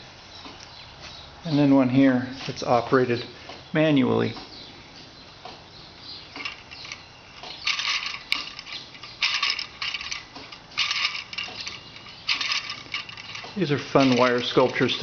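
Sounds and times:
wire parts rattling and clicking: 0:06.3 - 0:15.0.

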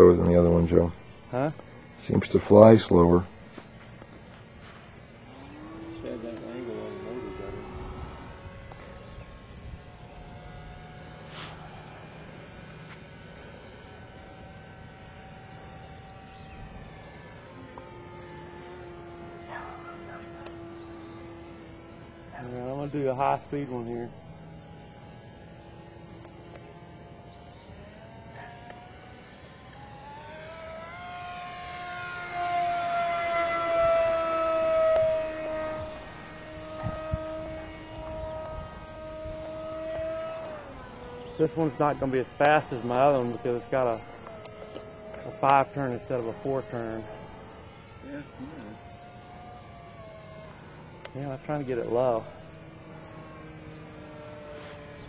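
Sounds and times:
electric motor and propeller whining: 0:00.0 - 0:55.0
flat steady tones: 0:00.0 - 0:55.0.

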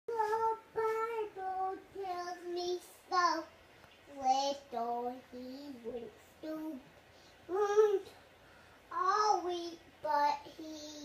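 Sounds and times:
young child singing: 0:00.1 - 0:06.9, 0:07.5 - 0:08.2, 0:08.9 - 0:11.0.

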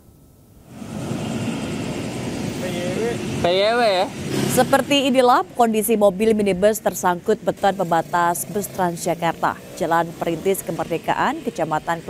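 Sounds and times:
city road traffic: 0:00.6 - 0:12.0.

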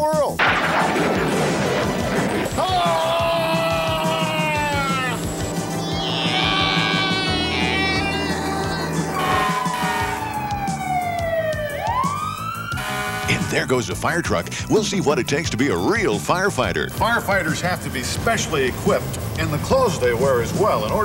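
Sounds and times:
upbeat background music: 0:02.1 - 0:21.0
siren wailing: 0:02.3 - 0:20.8.

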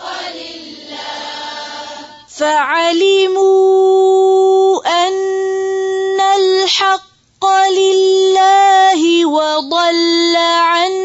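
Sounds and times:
woman chanting melodically: 0:00.0 - 0:11.0.

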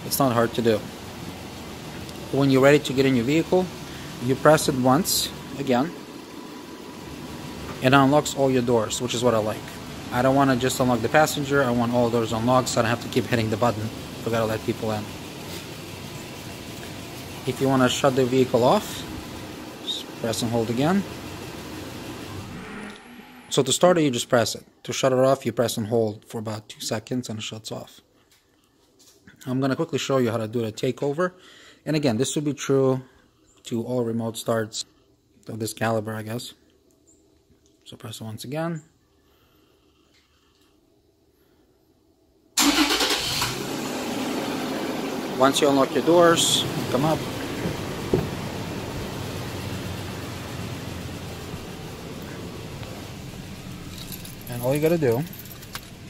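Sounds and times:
car engine idling: 0:00.0 - 0:23.6, 0:42.6 - 0:56.0.

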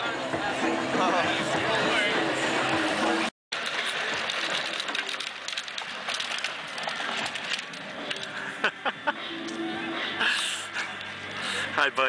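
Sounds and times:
outdoor street ambience: 0:00.0 - 0:12.0.

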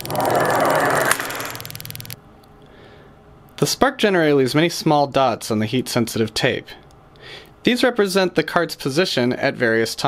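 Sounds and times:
lab cart rolling: 0:00.0 - 0:02.2
spark gap snapping: 0:00.0 - 0:02.2
spark generator hum: 0:00.0 - 0:02.2.

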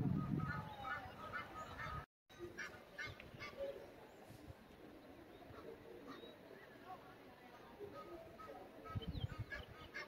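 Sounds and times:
geese honking: 0:00.2 - 0:02.0.

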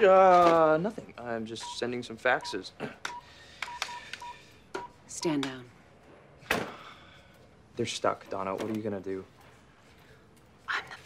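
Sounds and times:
short electronic beeps: 0:02.4 - 0:04.9.

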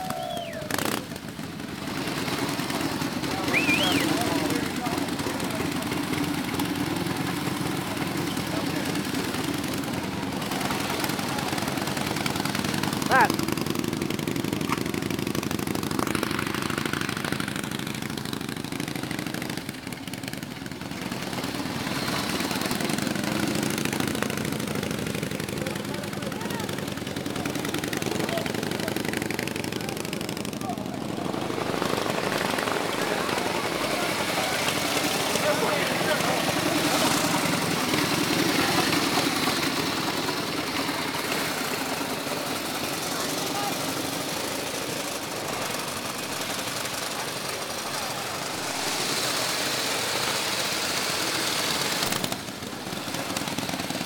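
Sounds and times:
crowd chatter: 0:00.0 - 0:54.0
motorcycle engines running: 0:00.0 - 0:54.0.

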